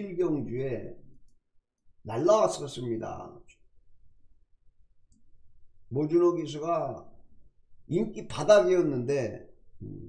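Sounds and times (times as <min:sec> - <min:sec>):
faint click: 0:05.1 - 0:05.3.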